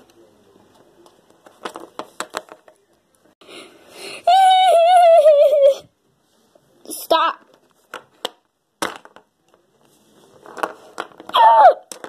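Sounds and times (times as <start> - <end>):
child sobbing: 4.1 - 5.9
child crying wail: 4.3 - 5.8, 11.4 - 11.8.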